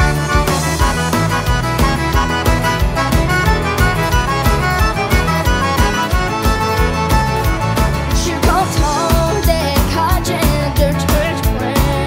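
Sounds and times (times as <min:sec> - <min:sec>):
steady beat: 0:00.0 - 0:10.6
accordion: 0:00.0 - 0:12.0
fiddle: 0:00.0 - 0:12.0.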